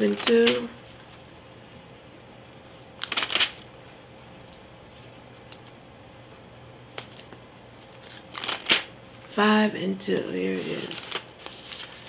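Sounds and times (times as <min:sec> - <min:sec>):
thin pages riffled by hand: 0:03.0 - 0:03.6, 0:07.9 - 0:08.9, 0:10.5 - 0:12.0.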